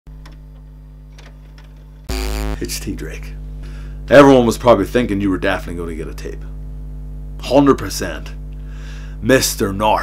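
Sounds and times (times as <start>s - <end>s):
low electrical hum: 0.1s - 10.0s.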